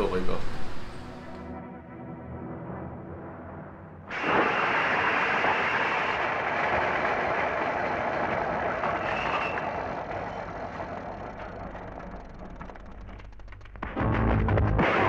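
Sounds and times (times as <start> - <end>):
loud rushing noise: 4.1 - 11.1
fast clicks: 4.2 - 14.0.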